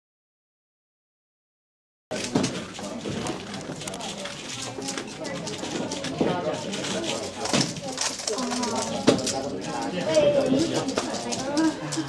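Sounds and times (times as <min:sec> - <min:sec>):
voices in the room: 0:02.1 - 0:12.0.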